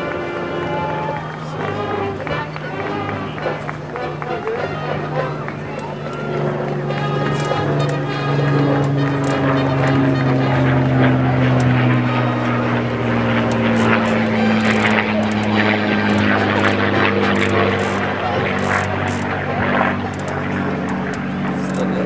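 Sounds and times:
aircraft engine drone: 0:00.0 - 0:22.0
voices: 0:00.0 - 0:22.0.

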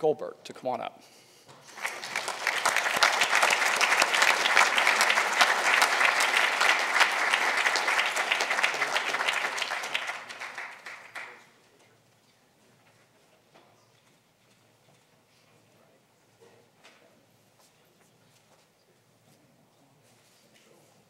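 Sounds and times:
audience applauding: 0:01.6 - 0:11.5.

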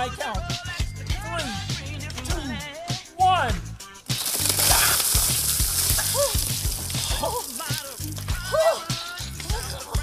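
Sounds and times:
music with steady bass beat: 0:00.0 - 0:10.0
ice water splashing down: 0:04.1 - 0:08.5.

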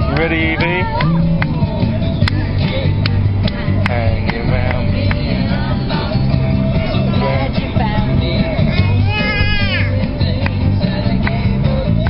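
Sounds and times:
baby high-pitched vocalizing: 0:08.7 - 0:10.0.

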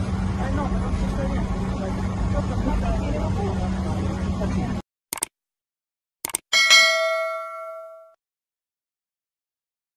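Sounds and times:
bell ding: 0:06.5 - 0:08.2.

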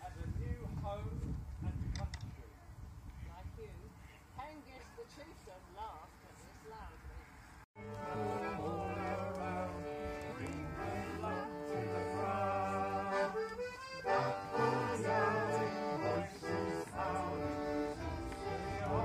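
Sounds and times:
instrumental folk melody: 0:07.8 - 0:19.0
sustained bass chords: 0:07.8 - 0:19.0.

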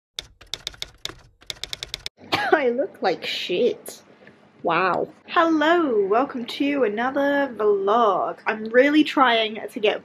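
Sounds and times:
keyboard keystroke clicks: 0:00.2 - 0:02.1.

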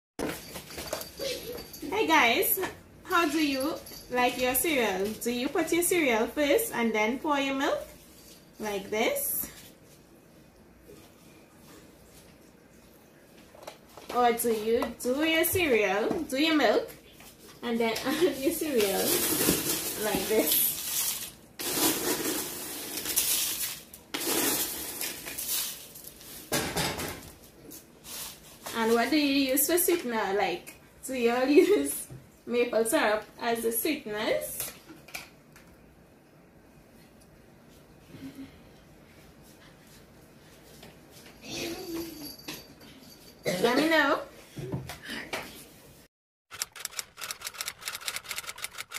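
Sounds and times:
cereal poured into a bowl: 0:20.7 - 0:26.1
rapid sharp clicks: 0:46.5 - 0:48.9.

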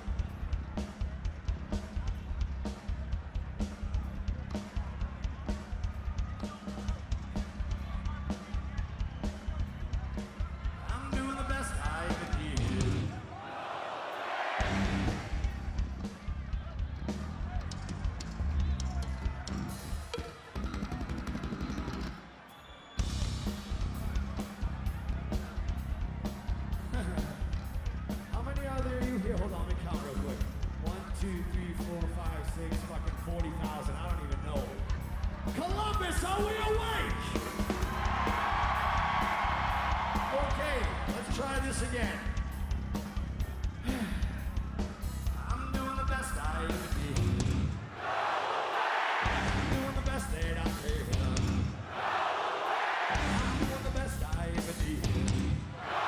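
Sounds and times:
pounding drums: 0:14.2 - 0:18.3, 0:23.0 - 0:56.0
hard rock band playing: 0:14.6 - 0:22.1, 0:23.0 - 0:47.8, 0:49.3 - 0:51.8, 0:53.2 - 0:55.7.

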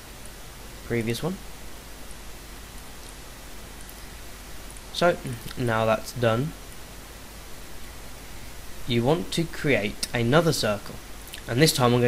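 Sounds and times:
faint low hum: 0:00.0 - 0:12.0
microphone hiss: 0:00.0 - 0:12.0.

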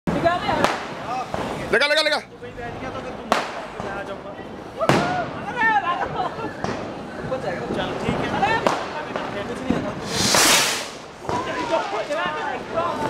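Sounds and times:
firecracker bangs: 0:00.1 - 0:01.7, 0:03.3 - 0:04.1, 0:04.8 - 0:05.5, 0:08.0 - 0:12.4.

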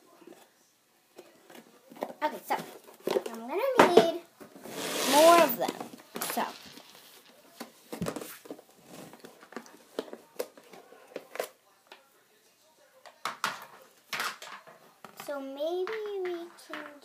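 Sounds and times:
crayons clattering in plastic tub: 0:02.1 - 0:11.4, 0:13.2 - 0:17.0.

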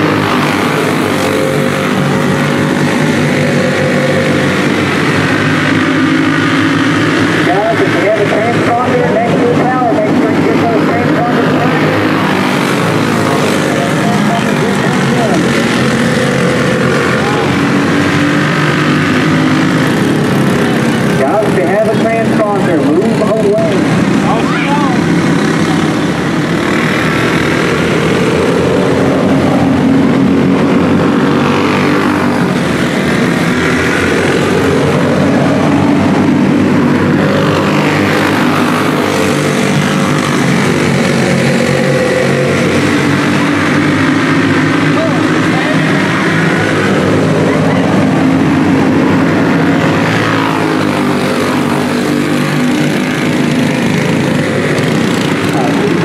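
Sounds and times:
kart engines wailing: 0:00.0 - 0:56.0.

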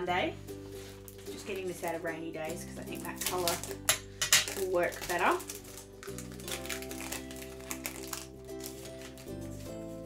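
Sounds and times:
paper sticker sheets crinkling: 0:02.9 - 0:10.0.

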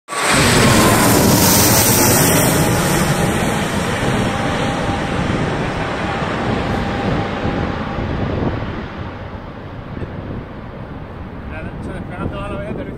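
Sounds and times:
faint falling jet whine: 0:00.1 - 0:12.9
jet engines roaring overhead: 0:00.1 - 0:12.9.

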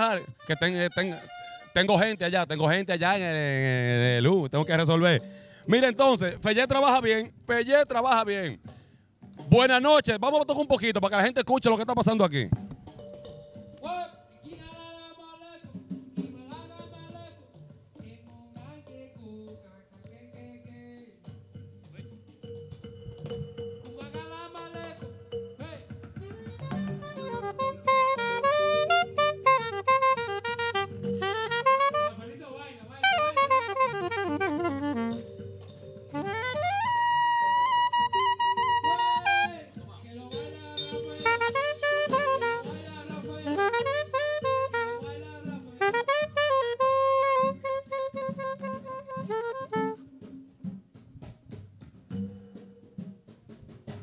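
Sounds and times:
saxophone jazz melody: 0:00.0 - 0:02.1, 0:22.7 - 0:50.6
low keyboard chords: 0:22.6 - 0:32.2, 0:33.0 - 0:50.0.

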